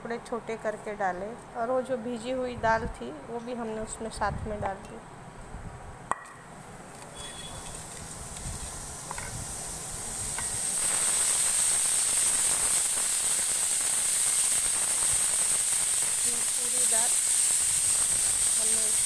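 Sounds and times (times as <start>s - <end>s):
steady hiss: 6.5s - 19.0s.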